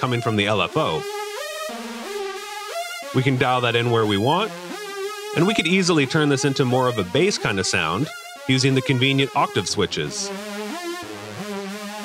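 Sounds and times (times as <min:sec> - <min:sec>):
shimmering synthesizer lead: 0:00.0 - 0:12.0.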